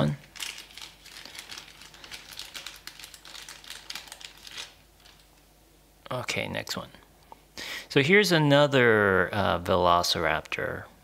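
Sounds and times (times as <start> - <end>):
packaging crinkling: 0.0 - 5.5.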